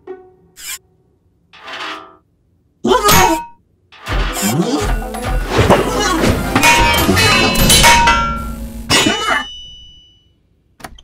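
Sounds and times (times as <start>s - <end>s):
cartoon music: 4.5s - 8.1s
ringing hits: 6.4s - 10.4s.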